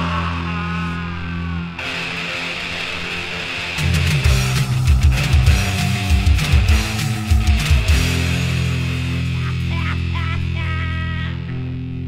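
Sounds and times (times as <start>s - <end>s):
distorted electric guitar: 0.0s - 12.0s
low guitar riff: 0.0s - 12.0s
drum hits: 4.0s - 9.2s.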